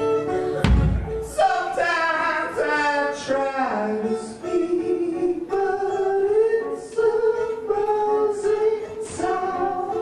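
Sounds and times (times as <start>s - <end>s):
voices singing sustained notes: 1.3s - 10.0s.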